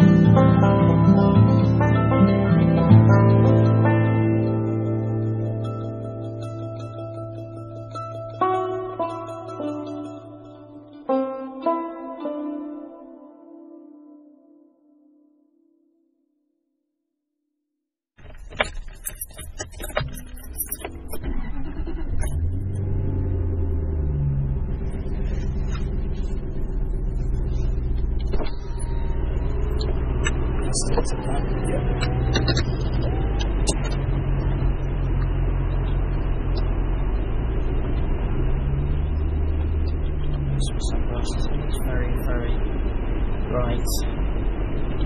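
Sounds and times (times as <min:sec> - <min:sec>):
sharp clicks and knocks: 0:18.2 - 0:21.2, 0:29.7 - 0:38.0
car engine from inside cabin: 0:18.5 - 0:45.0.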